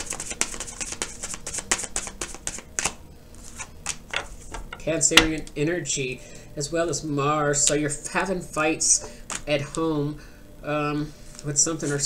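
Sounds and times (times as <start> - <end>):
cards being shuffled: 0.0 - 4.7.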